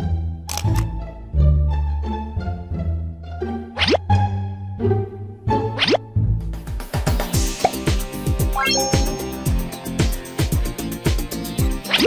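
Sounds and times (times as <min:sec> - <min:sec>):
camera shutter click: 0:00.5 - 0:00.9
plucked and bowed string music: 0:07.6 - 0:09.9.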